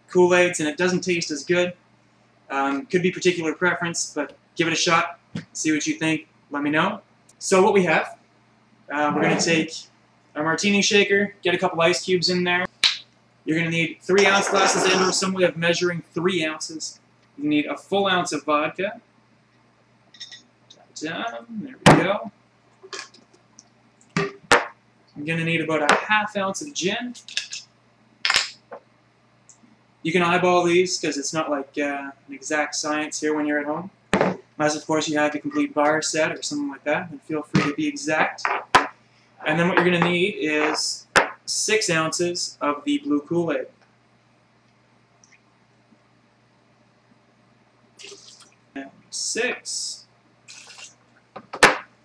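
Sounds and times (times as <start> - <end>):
object knocked on countertop: 34.2 - 34.4
liquid poured into shaker: 48.0 - 48.6, 50.5 - 51.0.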